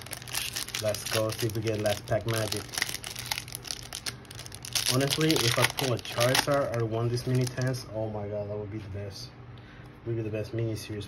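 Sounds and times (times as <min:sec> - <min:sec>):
foil wrapper crinkling: 0:00.0 - 0:07.8.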